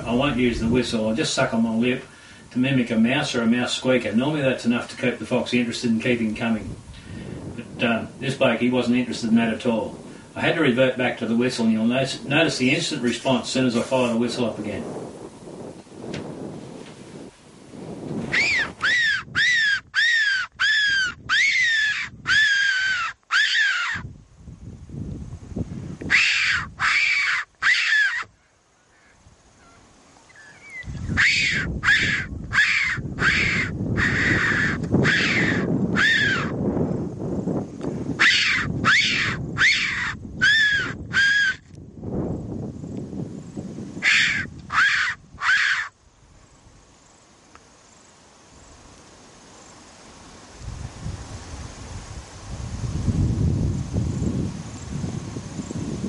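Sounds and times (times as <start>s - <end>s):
fox whistle squeals: 18.3s - 24.0s, 26.1s - 28.3s, 30.4s - 36.5s, 38.2s - 41.6s, 44.0s - 45.9s.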